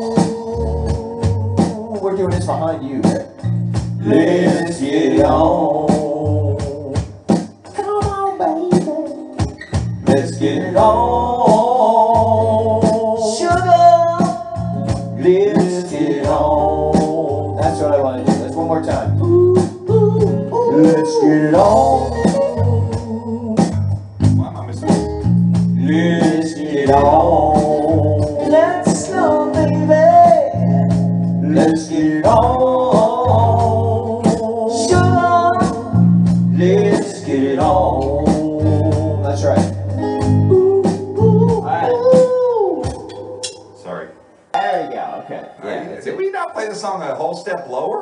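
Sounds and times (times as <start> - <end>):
person singing: 0.0 - 3.4, 4.0 - 23.9, 25.7 - 43.7
bass guitar: 0.0 - 43.6
drums: 0.0 - 43.8
electric guitar: 3.3 - 43.6.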